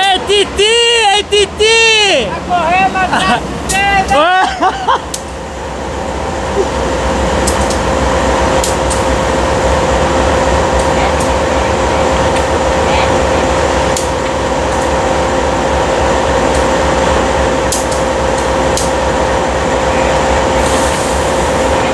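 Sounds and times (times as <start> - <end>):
voices: 0.0 - 5.1, 10.7 - 15.2
freight locomotive engine drone: 0.0 - 21.9.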